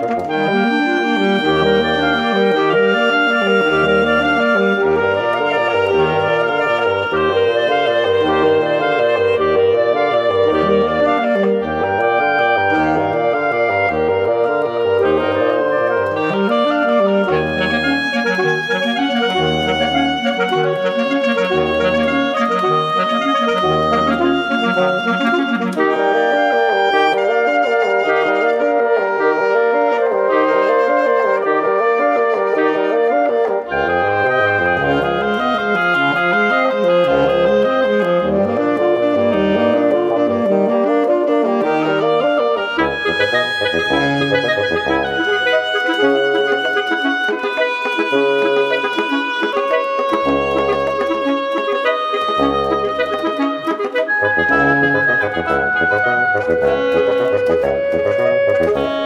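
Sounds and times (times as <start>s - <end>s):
reed quartet chamber music: 0.0s - 59.0s.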